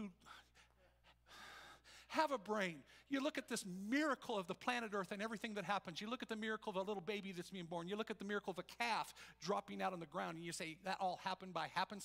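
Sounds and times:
man breathing in: 0.2s - 2.2s
man speaking: 2.1s - 12.0s.

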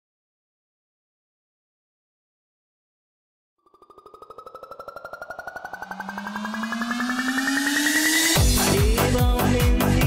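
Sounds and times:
fast pulsing roll: 3.6s - 8.6s
synth tones gliding upward: 3.6s - 8.6s
rising hiss sweep: 4.3s - 8.7s.

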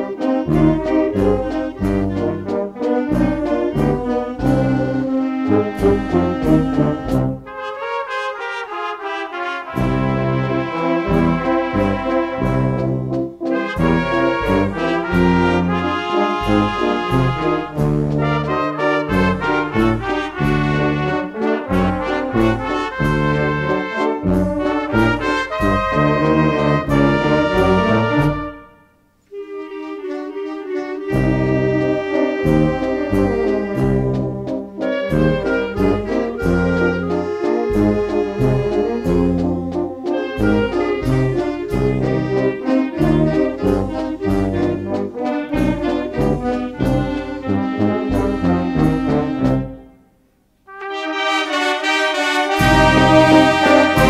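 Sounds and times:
brass instruments playing: 0.0s - 54.0s
percussion strikes: 52.5s - 54.0s
low bass line: 52.6s - 54.0s.

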